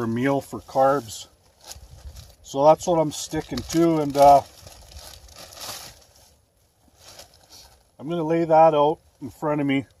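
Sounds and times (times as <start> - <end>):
plastic package rustling and crinkling: 1.4 - 8.0.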